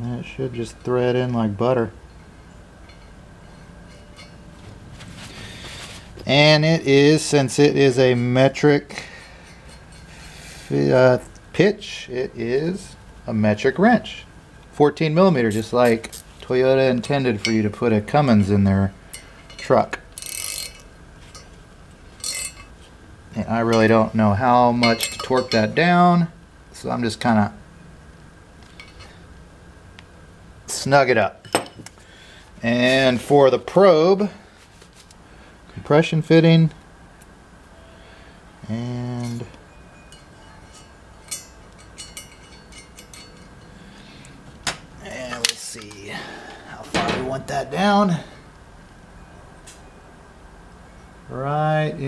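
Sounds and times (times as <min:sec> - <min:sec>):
ratcheting wrench clicking: 0:19.1 - 0:21.5, 0:22.2 - 0:22.7
metal probe clicking and clinking: 0:40.1 - 0:43.7.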